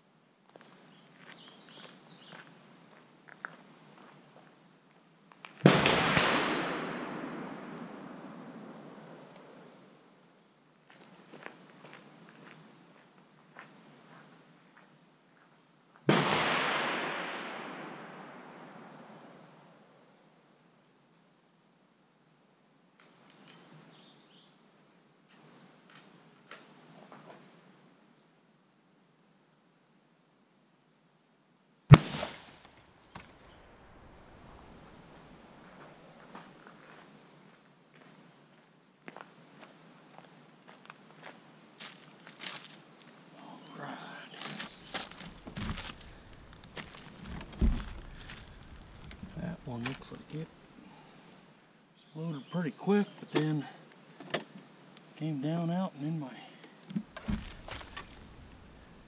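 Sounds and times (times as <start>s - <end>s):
rifle shots with echo: 5.6s - 8.2s, 16.1s - 19.3s, 31.9s - 32.6s.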